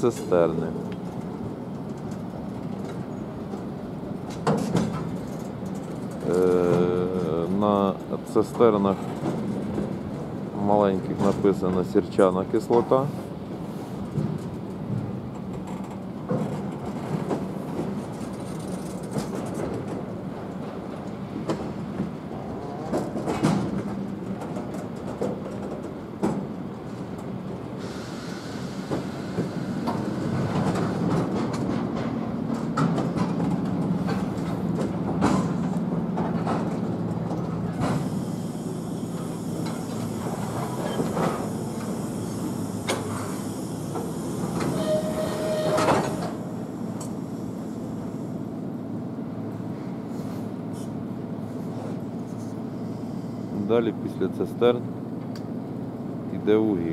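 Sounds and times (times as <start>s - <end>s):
wheels clacking over rail joints: 0.0s - 27.9s, 28.8s - 48.7s
train wheels rumbling on rails: 0.0s - 56.9s.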